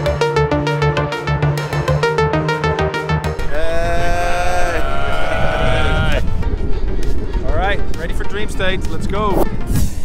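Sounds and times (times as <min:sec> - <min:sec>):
men shouting together: 0:03.5 - 0:06.2
man talking: 0:07.4 - 0:09.4.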